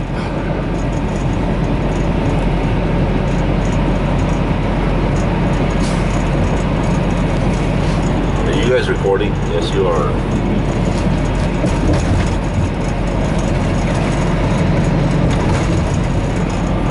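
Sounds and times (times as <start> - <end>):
road noise: 0.0 - 16.9
truck engine drone: 0.0 - 16.9.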